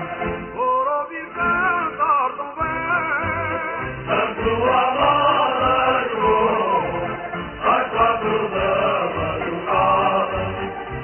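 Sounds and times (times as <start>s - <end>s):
person singing with vibrato: 0.0s - 10.8s
voices singing together: 2.6s - 11.0s.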